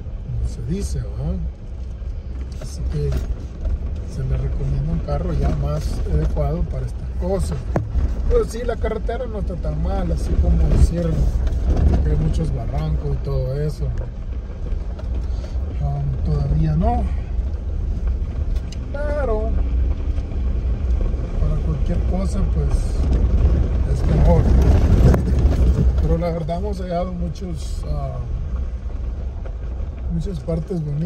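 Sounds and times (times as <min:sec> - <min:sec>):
car engine rumble: 0:00.0 - 0:31.0
tyres on gravel: 0:00.8 - 0:31.0.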